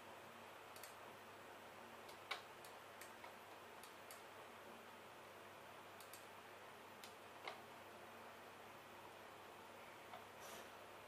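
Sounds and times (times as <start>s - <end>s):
background hiss: 0.0s - 11.0s
computer mouse clicks: 0.7s - 1.0s, 2.0s - 4.3s, 6.0s - 6.3s, 7.0s - 7.6s.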